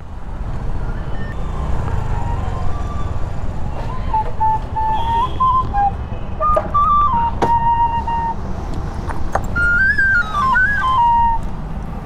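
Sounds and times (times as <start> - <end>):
bamboo flute melody: 3.7 - 8.5, 9.4 - 11.5.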